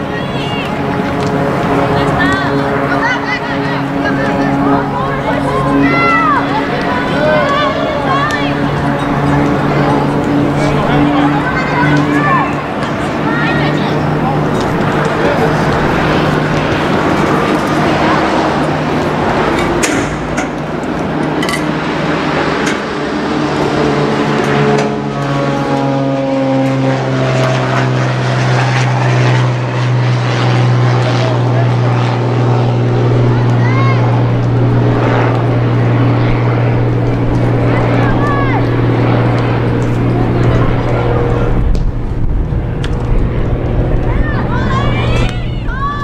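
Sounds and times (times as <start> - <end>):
droning engine hum: 0.0 - 46.0
faint voices: 0.0 - 46.0.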